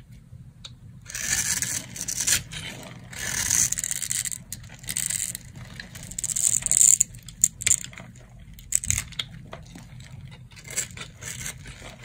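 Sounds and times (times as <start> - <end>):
knife scraping soap: 1.1 - 12.0.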